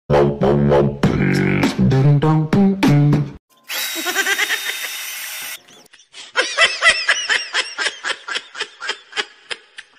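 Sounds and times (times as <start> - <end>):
snickering laugh sound effect: 3.9 - 5.0.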